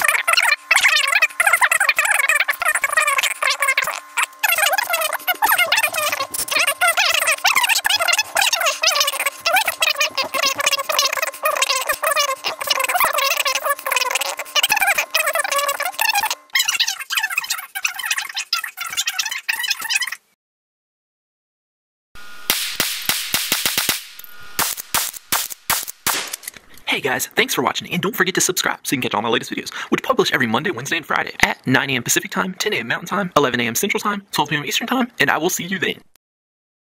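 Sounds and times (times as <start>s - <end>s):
sped-up high-pitched chatter: 0.0s - 20.3s
rapid gunshots: 22.5s - 26.4s.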